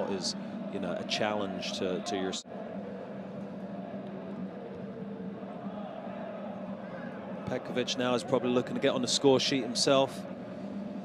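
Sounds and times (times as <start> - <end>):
field and crowd noise: 0.0 - 11.0.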